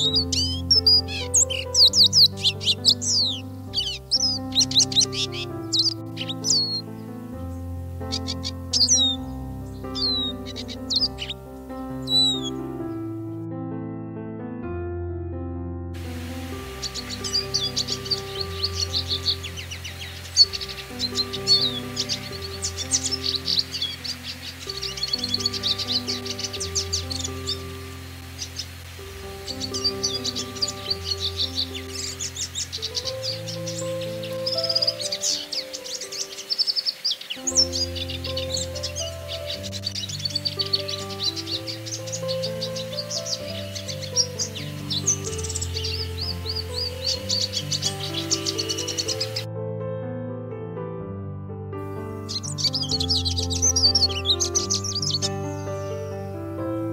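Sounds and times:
birds twittering song: 0.0s - 13.4s, 16.0s - 49.5s, 51.8s - 56.9s
slow background music: 0.0s - 56.9s.

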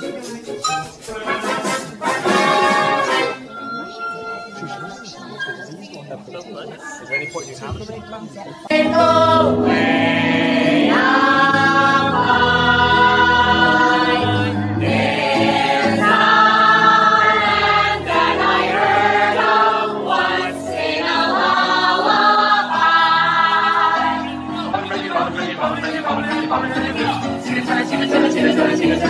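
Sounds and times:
group singing held notes: 0.0s - 3.5s, 8.6s - 29.0s.

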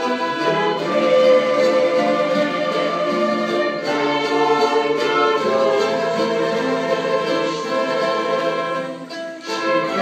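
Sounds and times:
group of singers: 0.0s - 10.0s
orchestra playing held chords: 0.0s - 10.0s.

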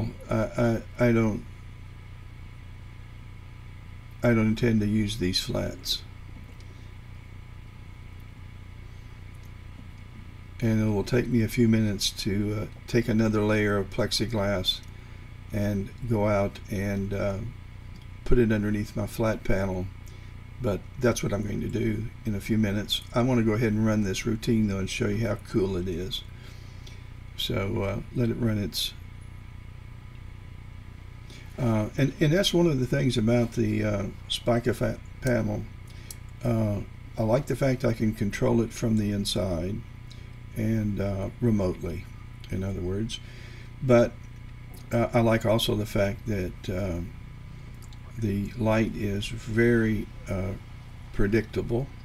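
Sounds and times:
faint hiss: 0.0s - 52.0s
low room hum: 0.0s - 52.0s.

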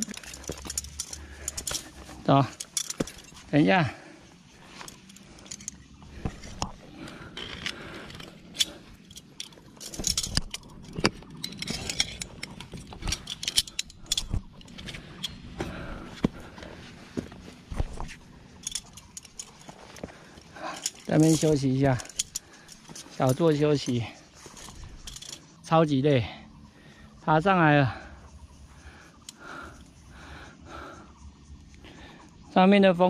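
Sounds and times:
carabiners clinking on metal: 0.0s - 32.7s.

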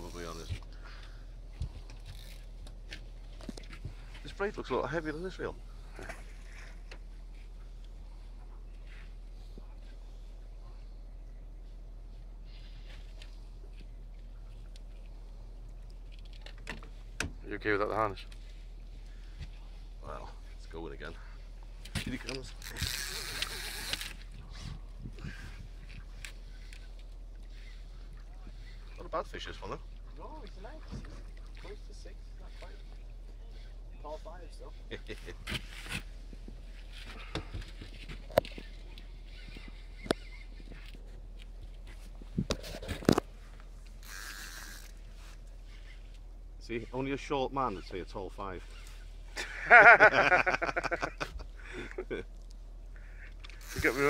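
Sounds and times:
steady low hum: 0.0s - 54.0s
water around a boat: 0.0s - 54.0s.

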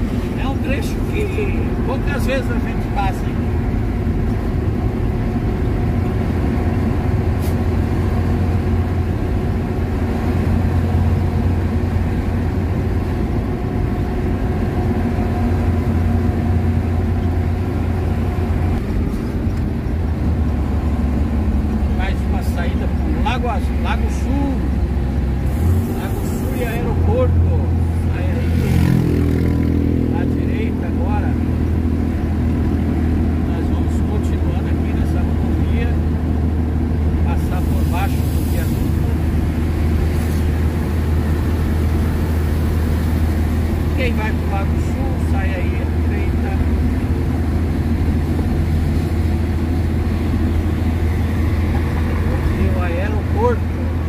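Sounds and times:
vehicle engine and road noise: 0.0s - 54.0s.

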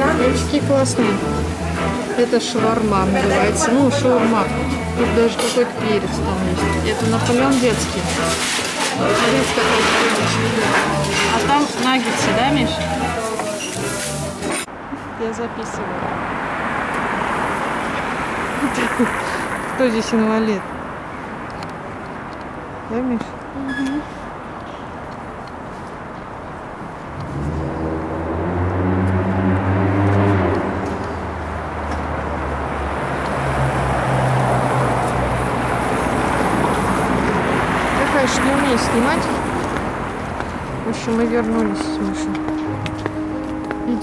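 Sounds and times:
music with held notes: 0.0s - 14.7s, 40.4s - 44.0s
road noise: 0.0s - 44.0s
street traffic noise: 0.0s - 44.0s
vehicle engine hum passing: 0.0s - 44.0s.

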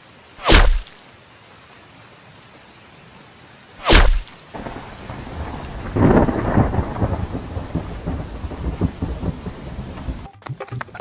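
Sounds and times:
arrow whoosh: 0.4s - 1.0s, 3.8s - 4.4s
thunder rumble with crackles: 4.5s - 10.3s.

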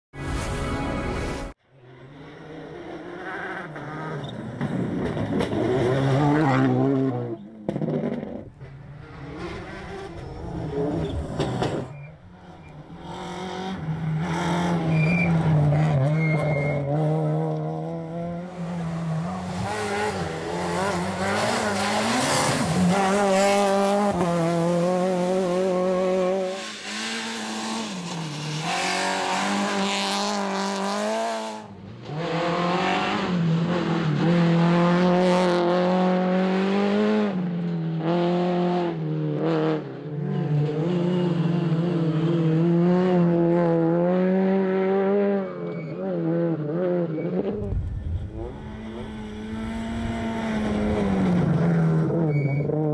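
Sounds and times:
rally car engines revving: 1.7s - 52.9s.

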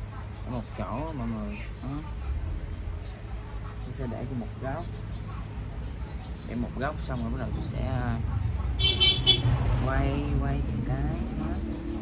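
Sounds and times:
low traffic rumble: 0.0s - 12.0s
vehicle horn beeping: 8.8s - 9.6s.

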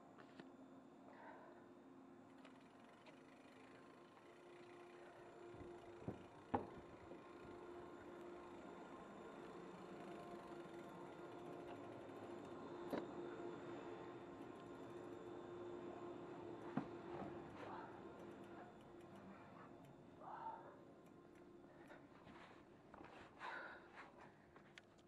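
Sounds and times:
chairlift machinery hum: 0.0s - 25.0s.

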